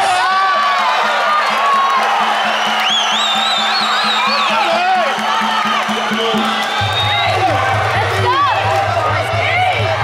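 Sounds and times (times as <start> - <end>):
crowd shouting: 0.0 - 10.0
fast drum beat: 0.0 - 10.0.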